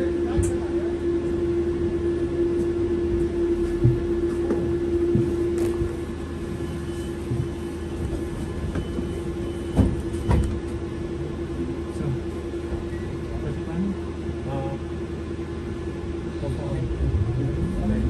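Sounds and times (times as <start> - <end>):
trolleybus electrical hum: 0.0 - 18.0
low rumble: 16.1 - 18.0.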